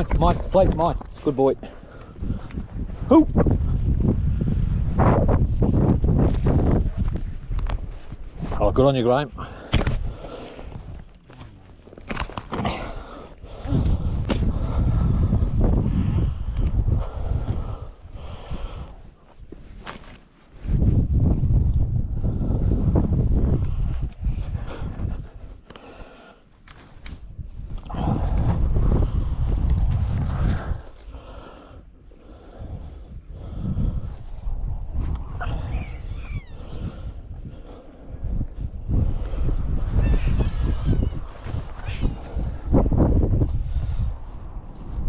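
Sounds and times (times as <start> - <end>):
wind buffeting microphone: 0.0 - 19.8, 20.5 - 45.0.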